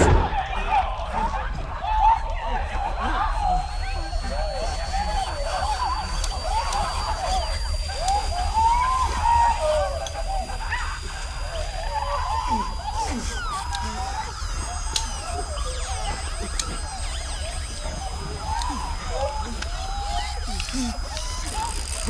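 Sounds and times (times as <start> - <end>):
warbling squealing alien calls: 0.9 - 22.0.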